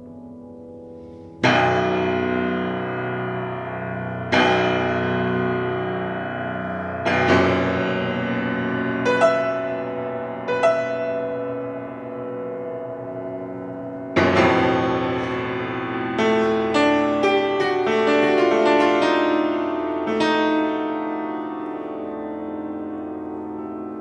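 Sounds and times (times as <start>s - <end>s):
grand piano chords: 0.0s - 24.0s.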